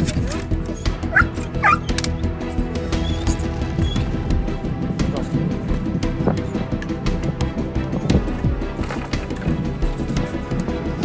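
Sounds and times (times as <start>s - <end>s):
background music: 0.0s - 11.0s
dog crying: 1.0s - 2.0s.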